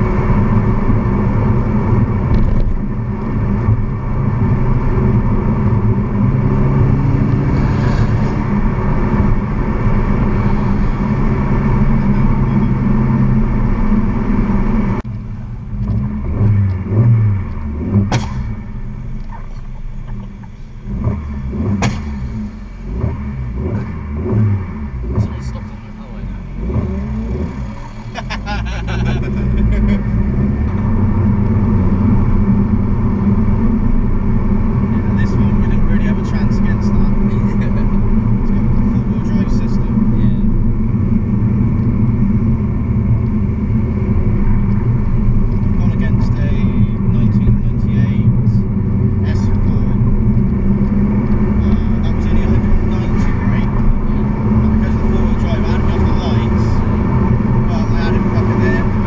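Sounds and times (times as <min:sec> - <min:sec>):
car engine and road drone: 0:00.0 - 0:59.0.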